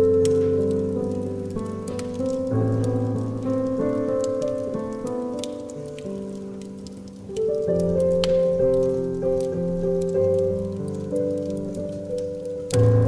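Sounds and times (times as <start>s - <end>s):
slow piano playing: 0.0s - 13.0s
wood fire crackling: 0.0s - 13.0s.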